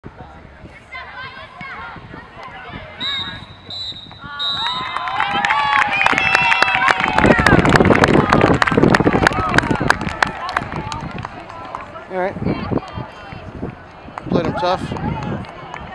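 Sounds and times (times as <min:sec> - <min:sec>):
referee's whistle blasts: 0:03.0 - 0:04.9
crowd cheering and shouting: 0:04.2 - 0:15.9
people clapping: 0:04.6 - 0:15.9.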